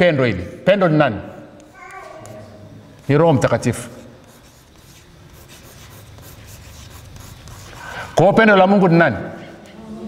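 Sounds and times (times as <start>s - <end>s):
chalk scratching on blackboard: 1.5s - 8.2s.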